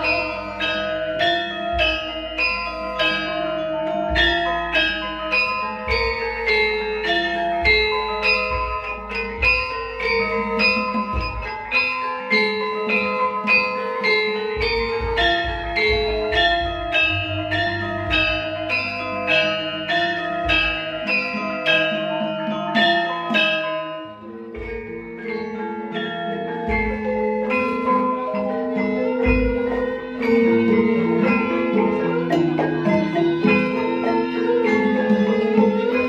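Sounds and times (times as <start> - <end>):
gamelan ensemble playing: 0.0 - 36.0
metallophones struck: 0.0 - 36.0.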